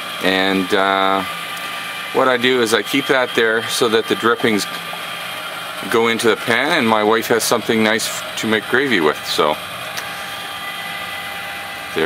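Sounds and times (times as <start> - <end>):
rotisserie motor whining: 0.0 - 12.0.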